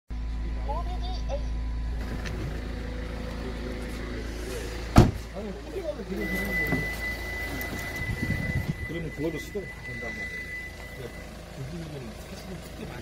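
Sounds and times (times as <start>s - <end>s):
engine idling: 0.1s - 13.0s
car door shutting: 2.0s - 2.6s, 4.9s - 5.4s, 6.2s - 8.9s.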